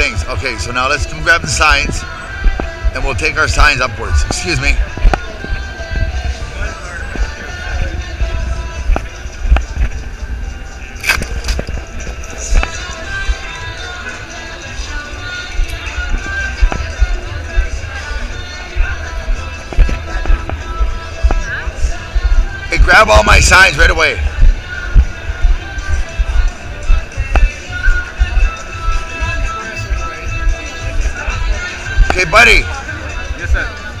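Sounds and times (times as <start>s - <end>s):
steady low rumble: 0.0s - 32.3s
background music: 0.0s - 34.0s
crowd chatter: 0.0s - 34.0s.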